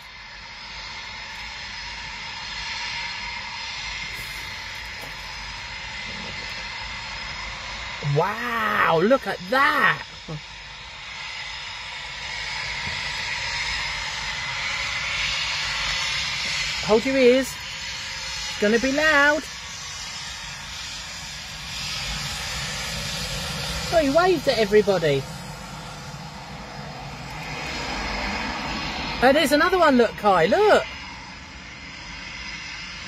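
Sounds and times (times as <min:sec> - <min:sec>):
jet engines hissing at a distance: 0:00.0 - 0:33.0.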